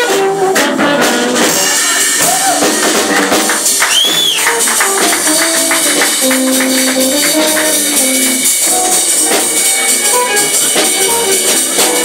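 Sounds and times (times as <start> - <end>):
piano notes: 4.4 - 12.0
bass notes: 4.5 - 12.0.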